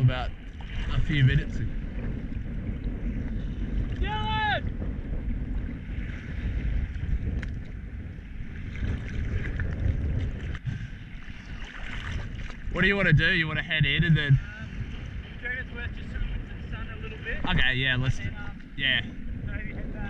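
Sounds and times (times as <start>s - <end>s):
sea water sloshing and slapping: 0.0s - 19.7s
wind on microphone: 0.0s - 20.0s
person shouting: 4.0s - 4.6s.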